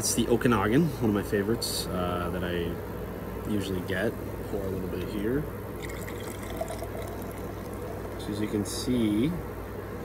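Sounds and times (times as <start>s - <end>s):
cider pouring into glass: 5.7s - 8.5s.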